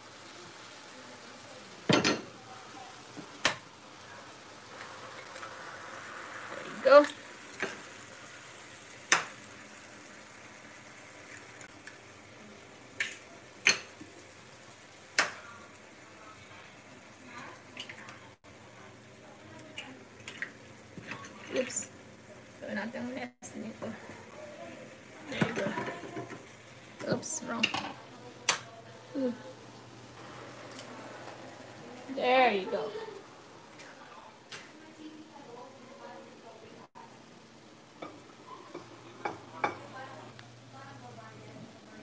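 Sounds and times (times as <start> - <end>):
low steady sizzle: 0.0 - 42.0.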